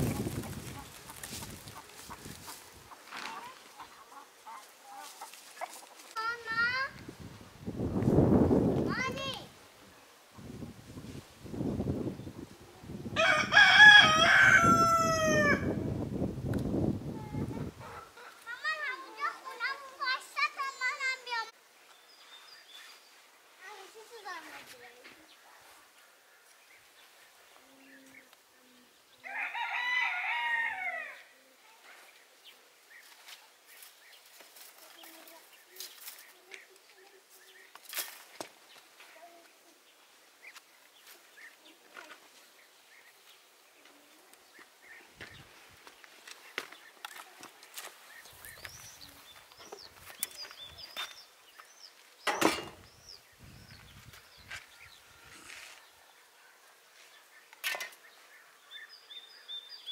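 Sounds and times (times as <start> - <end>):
rooster crowing: 13.2 - 15.8, 29.2 - 31.3
small birds chirping: 17.4 - 29.3, 31.1 - 59.9
wooden branches clicking and knocking: 37.7 - 38.6.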